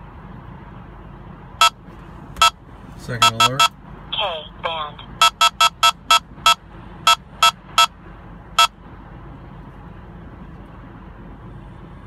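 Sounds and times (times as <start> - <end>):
short electronic beeps: 3.2 - 3.8, 5.2 - 8.0.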